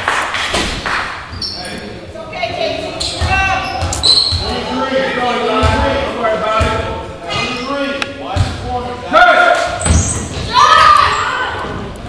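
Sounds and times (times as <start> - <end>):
short high squeaks: 3.0 - 4.5.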